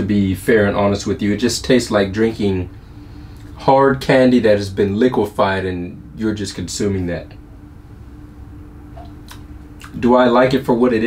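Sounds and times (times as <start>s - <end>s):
steady low hum: 0.0s - 11.0s
sharp mouth clicks: 9.0s - 10.0s.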